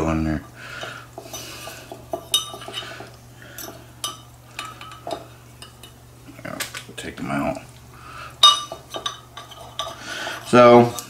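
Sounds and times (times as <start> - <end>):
sharp clinks: 1.3 - 6.0, 8.4 - 10.6
chopsticks scraping a bowl: 8.8 - 11.0.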